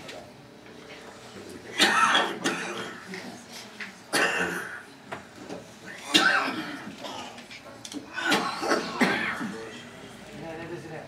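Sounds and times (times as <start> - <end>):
person coughing: 1.7 - 3.0, 4.1 - 4.8, 6.0 - 7.4, 8.2 - 9.7.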